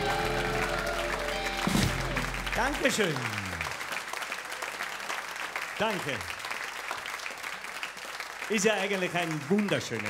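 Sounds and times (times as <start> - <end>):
rock band playing: 0.0 - 2.9
audience applauding: 0.0 - 10.0.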